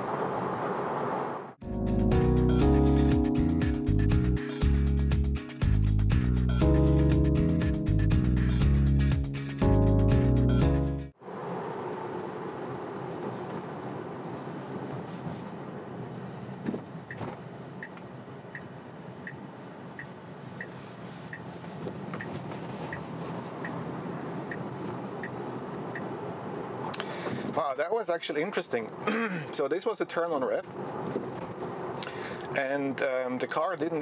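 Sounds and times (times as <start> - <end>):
tyre and road noise: 0.0 - 1.6, 11.2 - 34.0
turn signal ticking: 17.0 - 26.2.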